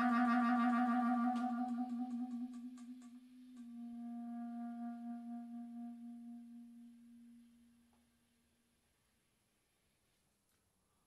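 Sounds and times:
clarinet long low note: 0.0s - 8.4s.

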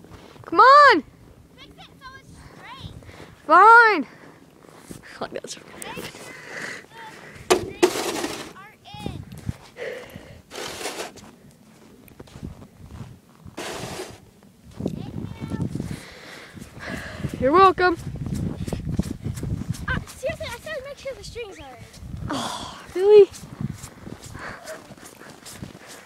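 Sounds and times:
footsteps crunching through snow: 4.1s - 8.5s, 10.5s - 22.0s, 22.9s - 26.0s
sharp knocks on plastic sled: 7.5s - 8.6s
microphone handling rustle: 12.2s - 22.3s, 22.9s - 26.0s.

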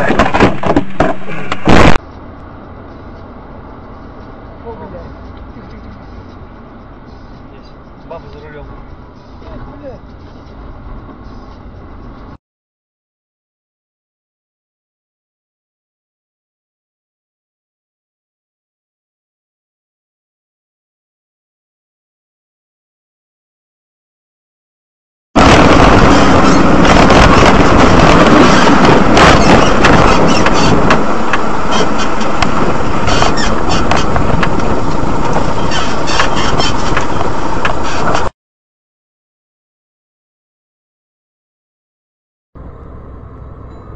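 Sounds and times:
knocks and clicks: 0.0s - 2.0s, 26.0s - 38.3s
tyre rumble on road: 0.0s - 2.3s, 25.4s - 38.3s
car engine hum: 0.0s - 12.4s, 25.4s - 38.3s, 42.6s - 43.9s.

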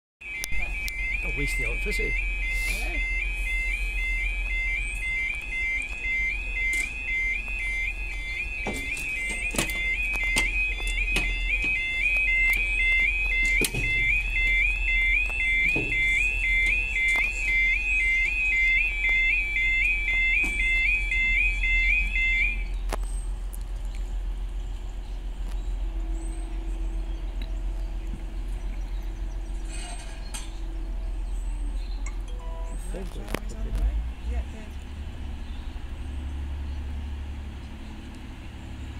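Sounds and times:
level crossing alarm warbling: 0.2s - 22.7s.

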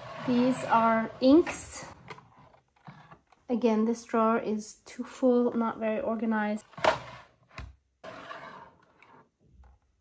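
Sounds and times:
plastic drawer sliding scrape: 0.0s - 3.4s, 6.6s - 9.3s.

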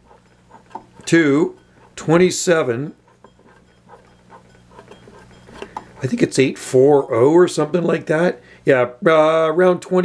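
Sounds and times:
tuning dial clicks and rubs: 0.0s - 8.1s.

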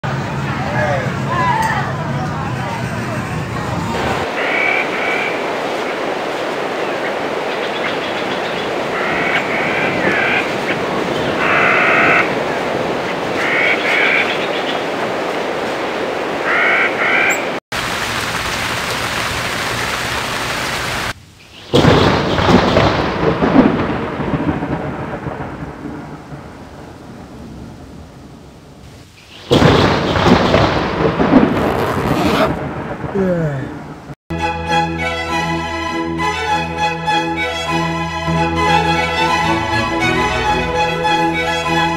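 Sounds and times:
steady rain: 3.5s - 34.2s
thunderclap rumbling: 3.8s - 16.8s, 21.7s - 28.8s, 29.4s - 34.2s.

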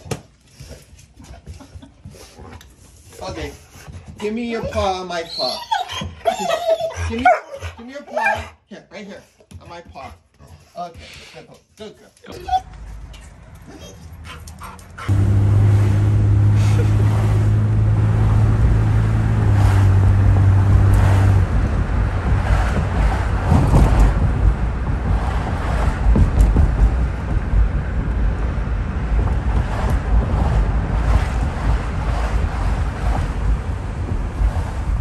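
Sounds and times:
low engine hum: 12.6s - 35.0s
wind buffeting microphone: 15.0s - 35.0s.

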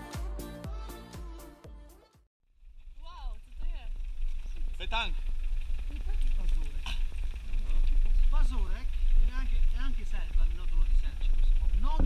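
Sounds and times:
music: 0.0s - 2.3s
vehicle engine rumble: 2.6s - 12.0s.

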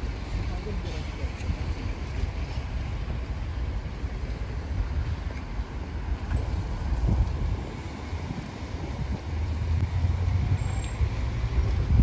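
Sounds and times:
traffic jam engines and tyres rumbling: 0.0s - 12.0s.

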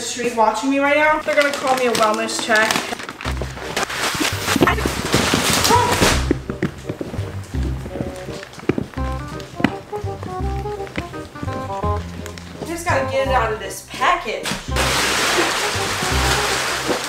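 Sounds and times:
plastic wrapping crackling: 0.2s - 13.3s, 14.4s - 17.0s
background music with bass line: 3.3s - 17.0s.

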